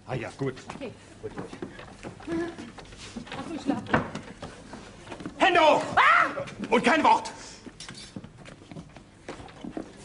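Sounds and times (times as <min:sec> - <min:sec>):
faint footsteps and shuffling: 0:00.0 - 0:10.0.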